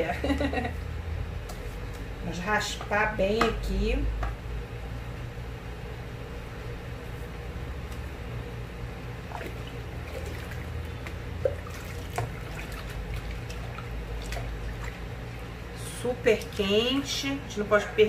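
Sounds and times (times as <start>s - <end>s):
liquid trickling: 9.2s - 16.8s.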